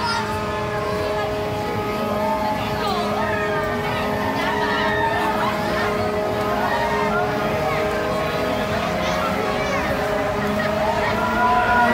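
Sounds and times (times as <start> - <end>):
amusement ride machinery humming: 0.0 - 11.9
people's voices: 0.0 - 11.9.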